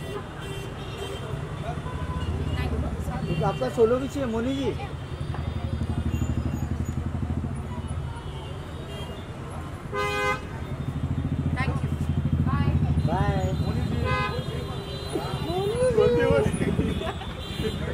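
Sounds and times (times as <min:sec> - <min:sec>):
car horn toot: 0:09.9 - 0:11.3, 0:12.8 - 0:17.9.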